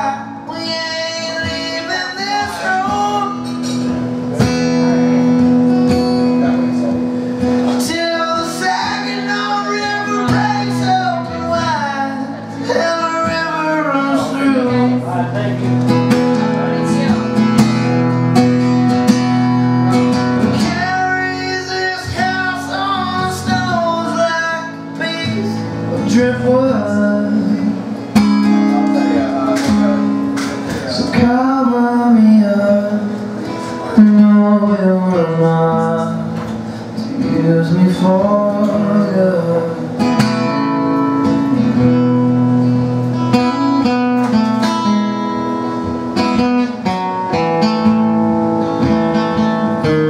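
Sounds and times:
man singing: 0.0 - 6.8, 7.4 - 17.7, 19.9 - 42.7
acoustic guitar strumming: 0.0 - 50.0.

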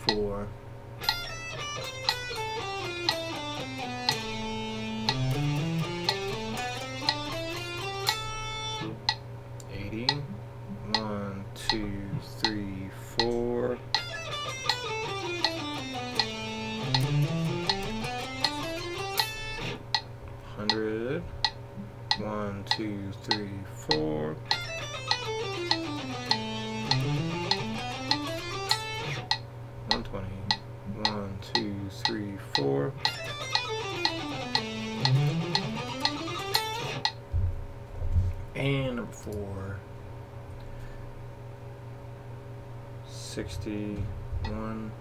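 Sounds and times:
metronome clicking: 0.0 - 0.3, 1.0 - 10.3, 10.9 - 37.2
electric guitar scale run: 1.0 - 9.2, 13.2 - 20.1, 22.1 - 37.2
low thumps: 37.3 - 38.3.

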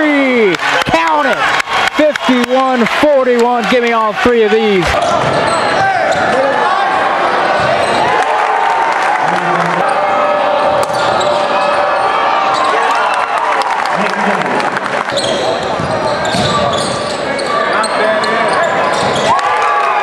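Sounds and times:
crowd talking: 0.0 - 20.0.

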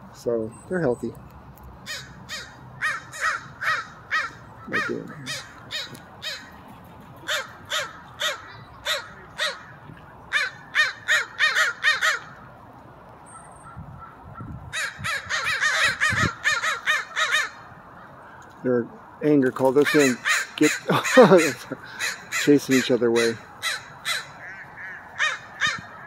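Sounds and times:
crows cawing: 1.8 - 6.6, 7.2 - 12.5, 13.6 - 18.6, 19.7 - 26.0.

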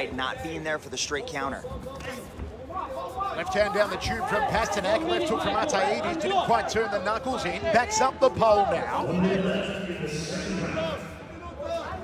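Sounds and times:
arena crowd noise: 0.0 - 12.0
male commentator speaking: 0.0 - 12.0.

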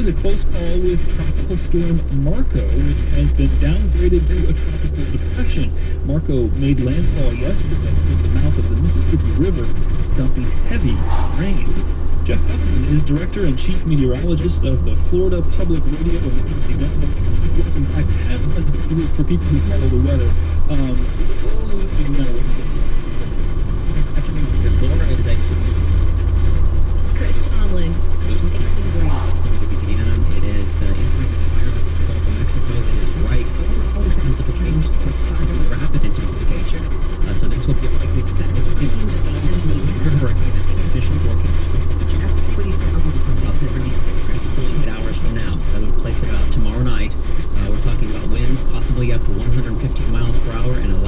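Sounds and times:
radio news speech: 0.0 - 51.0
steady low drone: 0.0 - 51.0.

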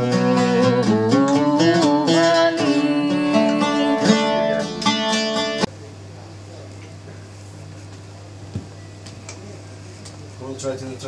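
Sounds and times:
oud plucked notes: 0.0 - 5.7.

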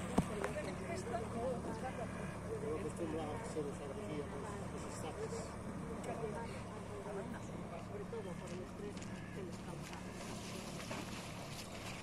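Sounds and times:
outboard motor running: 0.0 - 12.0.

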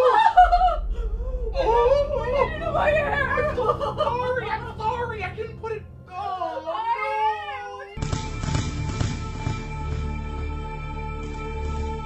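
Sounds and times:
woman crying and wailing: 0.0 - 8.0.

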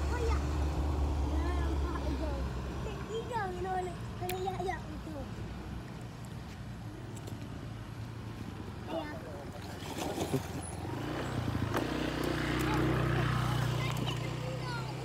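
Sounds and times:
engine hum: 0.0 - 15.0
water sloshing: 5.9 - 15.0
child splashing into water: 9.5 - 11.1.

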